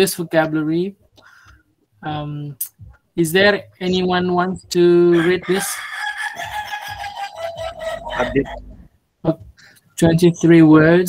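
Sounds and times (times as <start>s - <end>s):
rooster crowing: 5.1s - 8.8s.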